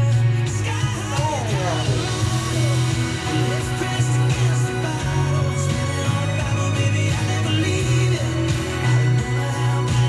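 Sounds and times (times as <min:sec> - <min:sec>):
country-pop music on radio: 0:00.0 - 0:10.0.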